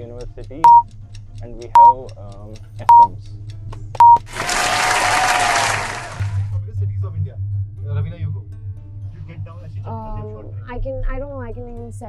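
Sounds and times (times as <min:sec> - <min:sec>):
countdown beeps: 0:00.6 - 0:00.8, 0:01.8 - 0:02.0, 0:02.9 - 0:03.1, 0:04.0 - 0:04.3.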